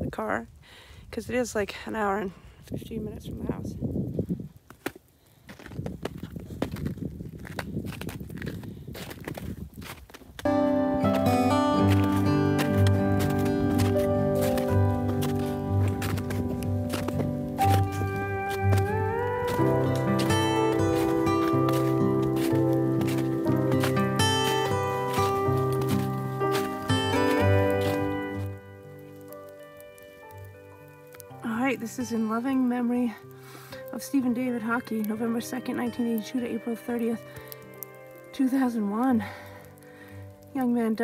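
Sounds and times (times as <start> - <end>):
footsteps on packed snow: 4.7 - 30.4
background music with bass line: 10.5 - 28.8.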